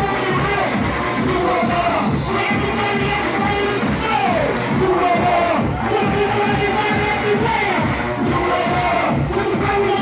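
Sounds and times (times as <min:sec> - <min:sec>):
club dance music: 0:00.0 - 0:10.0
crowd: 0:00.0 - 0:10.0
man shouting into a microphone: 0:00.0 - 0:10.0.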